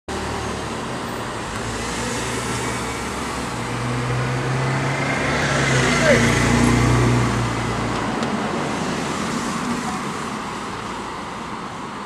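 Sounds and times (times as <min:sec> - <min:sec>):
vehicles passing: 0:00.1 - 0:12.0.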